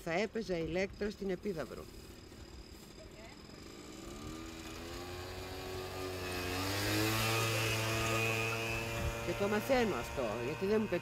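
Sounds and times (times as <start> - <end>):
motor engine approaching: 0.0 - 11.0.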